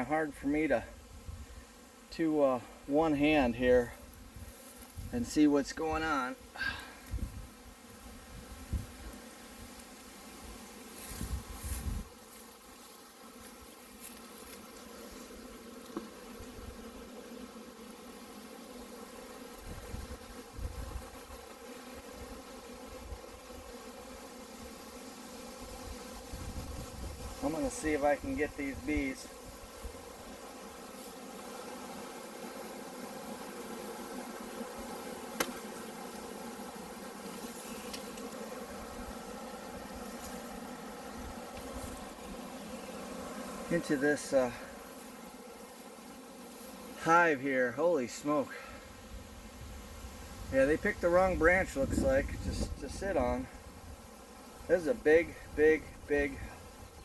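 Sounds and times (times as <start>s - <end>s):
honey bee swarm buzzing: 0.0s - 57.0s.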